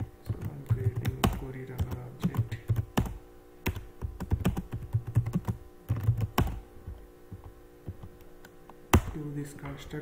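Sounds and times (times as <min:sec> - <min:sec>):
faint low hum: 0:00.0 - 0:10.0
keyboard typing clicks: 0:00.2 - 0:08.3.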